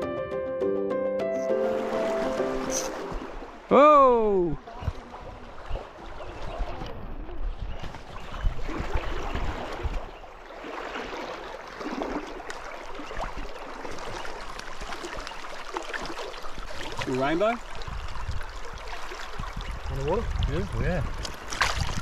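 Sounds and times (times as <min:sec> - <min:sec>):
river water rushing over stones: 0:01.5 - 0:04.5.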